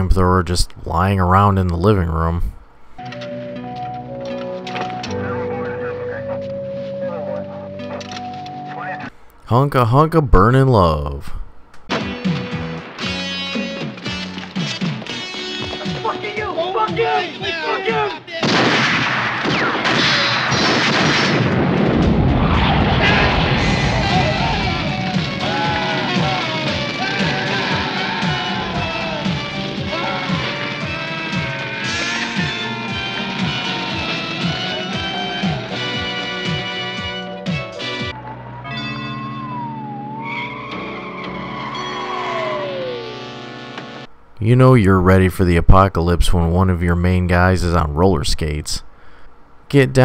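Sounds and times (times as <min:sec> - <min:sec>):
film score music: 0:02.8 - 0:09.4, 0:18.9 - 0:44.2
flamethrower rush of burning flame: 0:20.3 - 0:28.7
police siren wailing: 0:22.2 - 0:37.1, 0:38.0 - 0:44.1
tyres screeching: 0:22.8 - 0:35.9.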